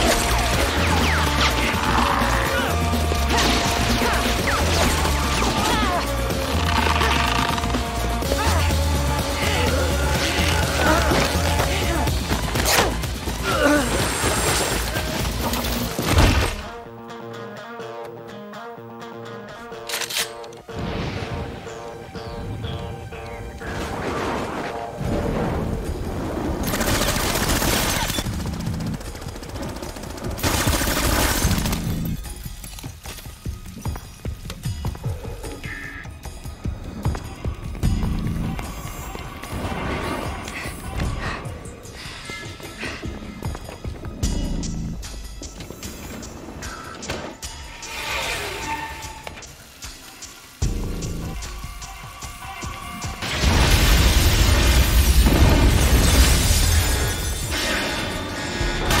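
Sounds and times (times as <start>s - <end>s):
dramatic score music: 0.0s - 59.0s
glass and debris smashing: 53.2s - 58.2s.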